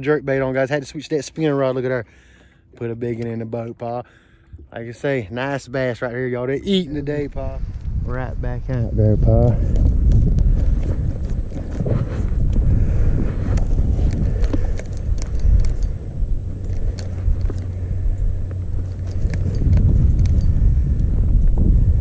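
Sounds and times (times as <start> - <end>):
wind buffeting microphone: 6.5 - 22.0
fishing reel clicks and knocks: 13.6 - 17.8.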